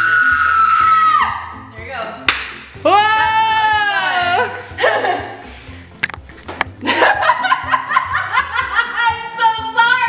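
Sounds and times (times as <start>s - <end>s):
woman screaming: 0.0s - 1.4s, 2.8s - 4.6s.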